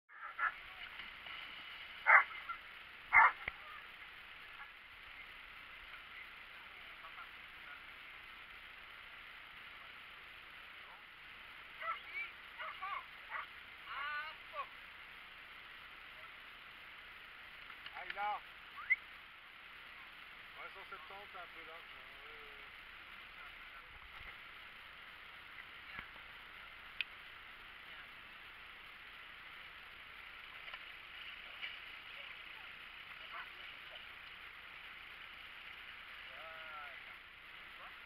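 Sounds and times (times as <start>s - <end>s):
steady hiss: 0.2s - 38.0s.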